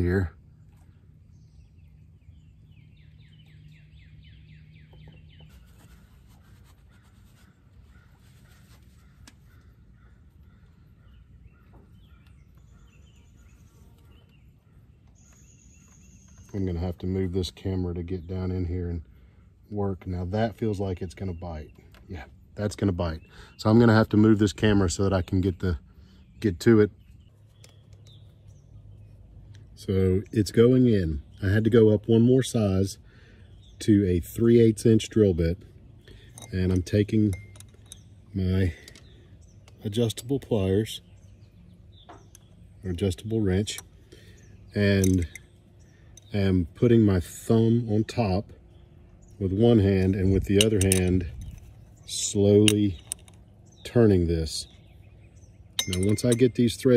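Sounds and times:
bird chirping: 0.0s - 56.9s
faint outdoor ambience: 0.0s - 56.9s
steady low hum: 0.0s - 56.9s.

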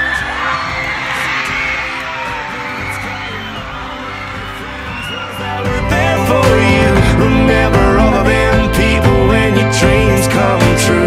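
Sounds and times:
instrumental country music: 5.2s - 11.0s.

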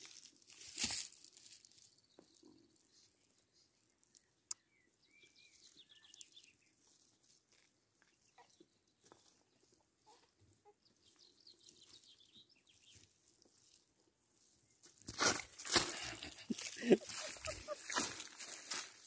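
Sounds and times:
footsteps through grass and dry ground: 0.0s - 3.4s, 5.4s - 9.8s, 11.0s - 19.0s.

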